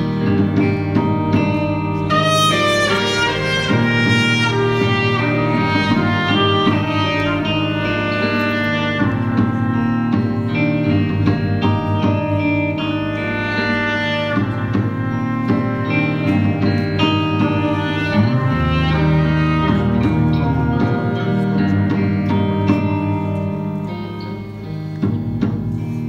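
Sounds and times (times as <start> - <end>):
indie rock band playing: 0.0 - 26.0
horn-like melody line: 2.0 - 24.6.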